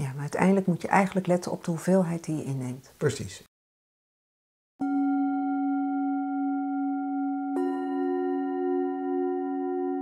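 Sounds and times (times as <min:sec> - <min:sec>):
metallic bell tone ringing: 0:04.8 - 0:10.0.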